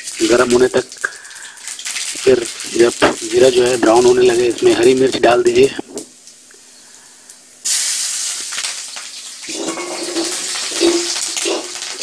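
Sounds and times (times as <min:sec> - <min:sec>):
chillies sizzling in hot oil: 0:00.0 - 0:12.0.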